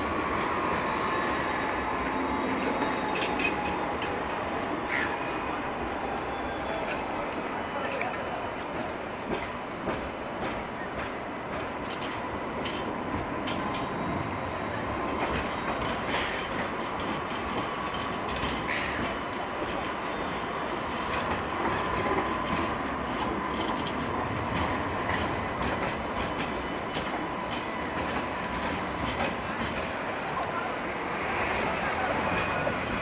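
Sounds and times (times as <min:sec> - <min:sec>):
tram wheels rumbling on rail: 0:00.0 - 0:33.0.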